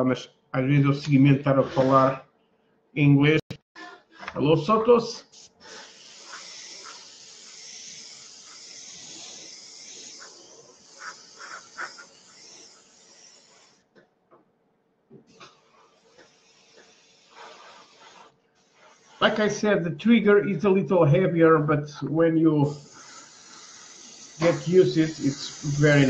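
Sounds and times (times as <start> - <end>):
airbrush spraying hiss: 5.1 - 13.8, 15.3 - 19.6, 22.6 - 26.0.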